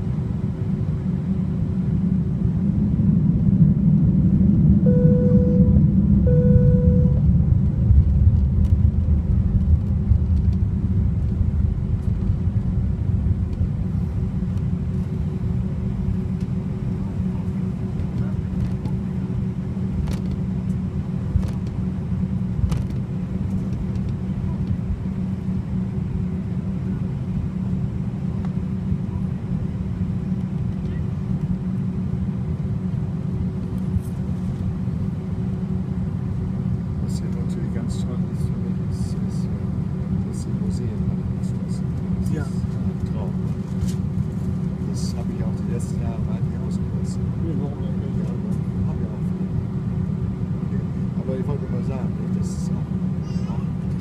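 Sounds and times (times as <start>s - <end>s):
jet engines rumbling: 0.0s - 54.0s
faint steady hum: 1.0s - 18.3s.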